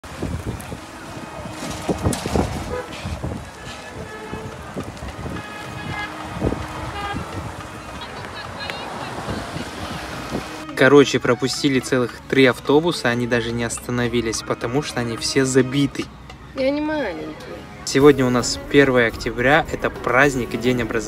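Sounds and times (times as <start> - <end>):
scooters passing: 0.0 - 10.7
short horn toots: 1.4 - 7.4
background voices: 17.9 - 21.0.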